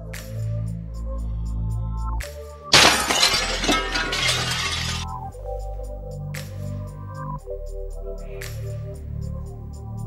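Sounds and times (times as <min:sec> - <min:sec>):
glass shattering: 0:02.7 - 0:05.2.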